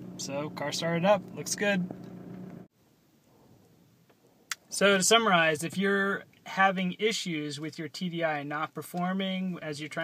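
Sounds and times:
car engine idling hum: 0:00.0 - 0:02.7.

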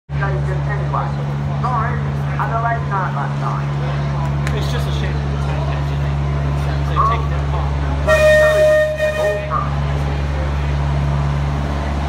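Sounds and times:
people talking: 0:00.1 - 0:11.1
diesel locomotive engine idling: 0:00.1 - 0:12.0.

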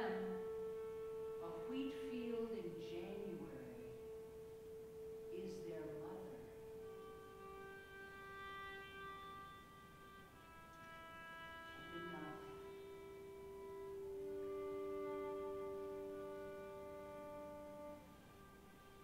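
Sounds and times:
violin playing long notes: 0:00.0 - 0:19.0.

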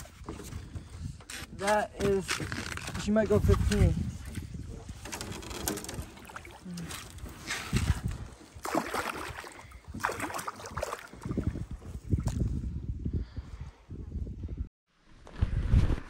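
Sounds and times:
water lapping: 0:03.6 - 0:12.4
fish splashing at the surface: 0:08.6 - 0:11.2.

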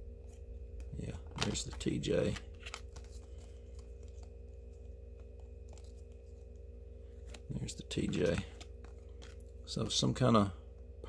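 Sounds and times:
low steady hum: 0:00.0 - 0:11.0
cards shuffled by hand: 0:00.3 - 0:10.1.

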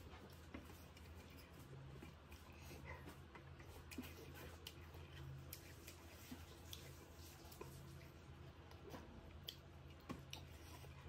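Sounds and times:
person chewing: 0:00.0 - 0:11.0
steady low hum: 0:00.0 - 0:11.0.

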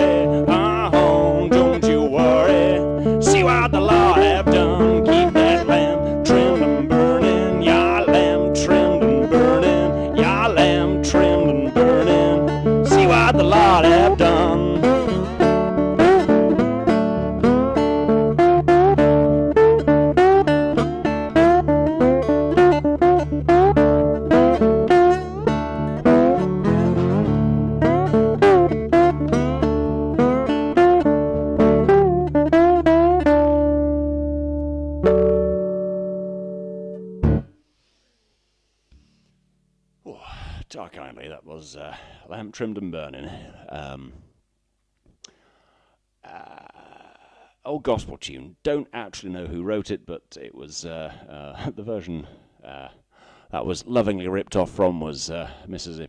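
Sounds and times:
man singing: 0:00.0 - 0:15.4, 0:40.1 - 0:44.2
acoustic guitar playing: 0:00.0 - 0:38.0.

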